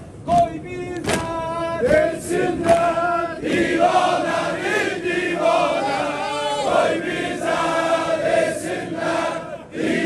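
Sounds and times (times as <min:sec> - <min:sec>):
men singing together: 0:01.8 - 0:10.0.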